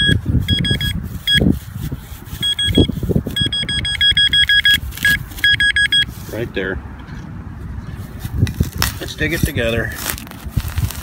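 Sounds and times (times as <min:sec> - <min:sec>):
metal detector beeping: 0:00.0 - 0:01.6, 0:02.3 - 0:06.1.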